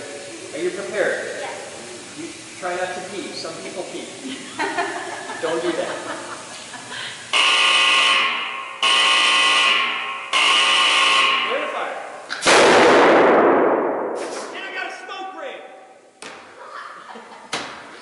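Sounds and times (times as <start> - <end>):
warning tone: 7.4 - 11.8
very loud ringing bang: 12.4 - 14.3.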